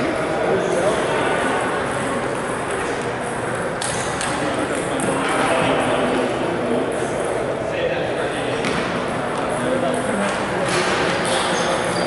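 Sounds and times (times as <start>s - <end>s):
background voices in a gym: 0.0s - 12.0s.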